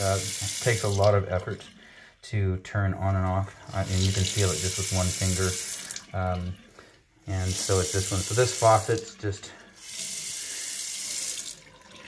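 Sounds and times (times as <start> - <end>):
faucet water running into sink: 0.0 - 1.7, 3.6 - 6.7, 7.3 - 12.0.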